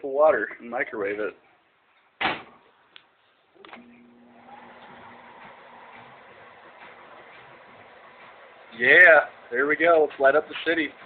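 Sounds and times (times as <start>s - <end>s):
microwave humming: 3.6s - 11.0s.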